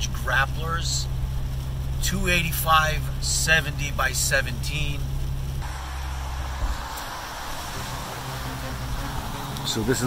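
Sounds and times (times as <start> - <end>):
car drive drone: 0.0 - 10.0
rain and tyres on wet road: 0.0 - 10.0.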